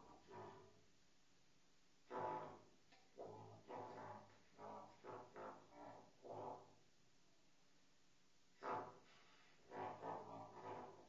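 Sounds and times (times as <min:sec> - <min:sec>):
muted trumpet notes: 0:00.0 - 0:00.8, 0:02.0 - 0:06.8, 0:08.6 - 0:11.0.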